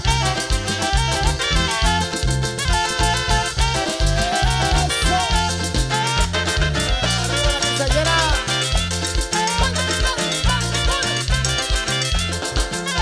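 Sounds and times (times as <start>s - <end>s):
live band playing instrumental: 0.0s - 13.0s.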